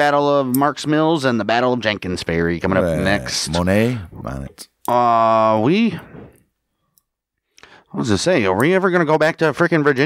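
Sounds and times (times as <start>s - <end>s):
man speaking: 2.3s - 6.2s
person speaking: 2.6s - 6.3s.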